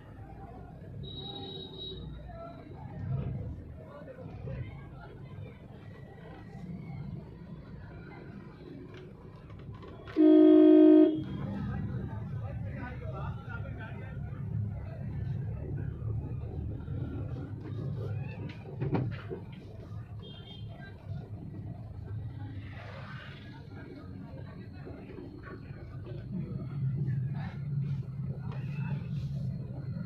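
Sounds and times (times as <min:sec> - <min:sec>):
low traffic rumble: 0:00.0 - 0:30.0
people's voices: 0:00.0 - 0:30.0
vehicle horn: 0:10.1 - 0:11.3.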